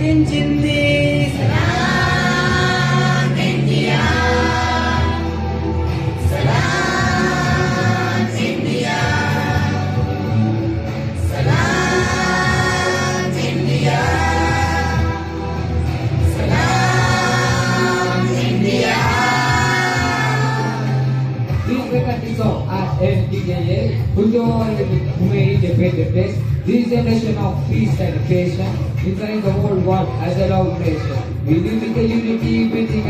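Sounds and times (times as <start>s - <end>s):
bass accompaniment: 0.0s - 33.0s
children singing together: 1.3s - 10.4s, 11.1s - 21.3s.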